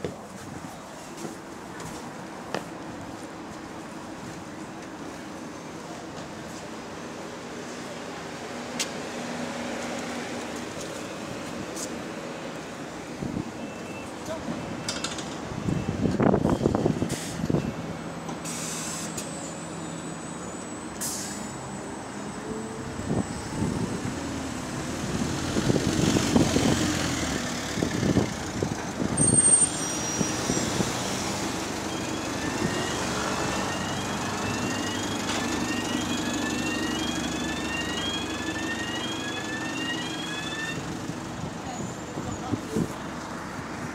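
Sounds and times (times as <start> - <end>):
bus engine pulling away: 0.2 - 43.9.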